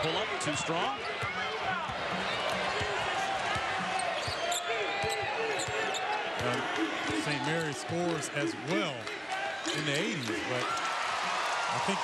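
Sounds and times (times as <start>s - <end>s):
arena crowd noise: 0.0s - 12.0s
sneakers squeaking: 0.6s - 7.4s.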